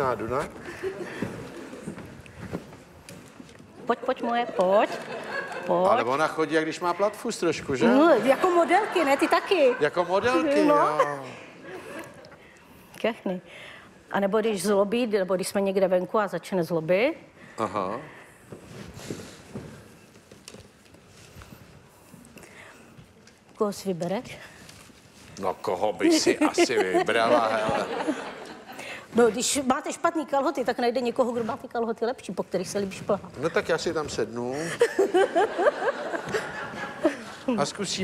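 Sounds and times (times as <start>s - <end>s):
faint rustling: 0.0s - 3.8s.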